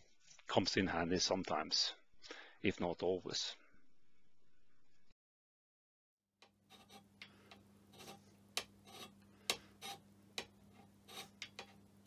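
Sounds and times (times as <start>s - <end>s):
faint steady hum: 6.5s - 12.0s
hand scraper scraping metal: 6.7s - 7.2s, 7.9s - 10.0s, 10.7s - 11.8s.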